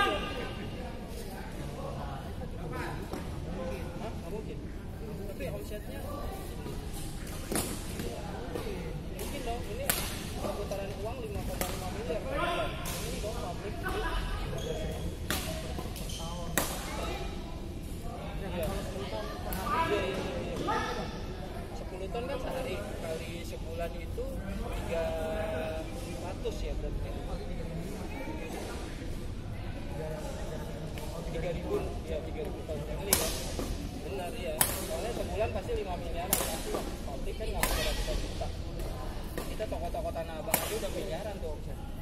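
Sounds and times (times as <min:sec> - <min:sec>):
background chatter: 0:00.0 - 0:42.0
rackets hitting shuttlecock: 0:36.3 - 0:36.9, 0:37.6 - 0:38.0, 0:40.5 - 0:40.9.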